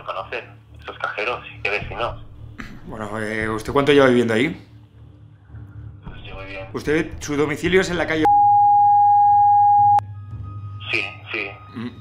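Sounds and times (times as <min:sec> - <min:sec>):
censor bleep tone: 0:08.3 - 0:10.0.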